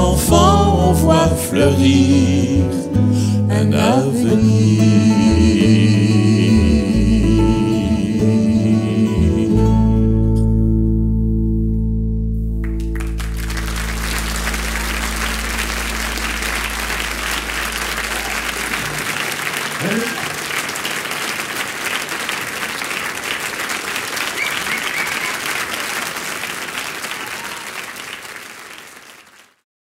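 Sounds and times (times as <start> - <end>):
audience applauding: 12.6 - 29.6
voice from the crowd: 13.1 - 29.5.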